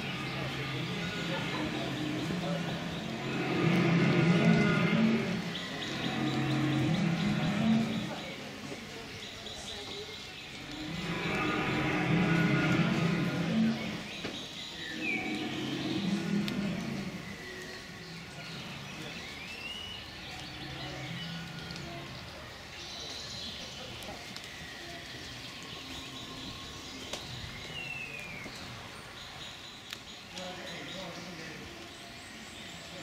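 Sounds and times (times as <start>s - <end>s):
birds chirping: 0.0s - 33.0s
faint distant voices: 0.0s - 33.0s
outdoor background noise: 0.0s - 33.0s.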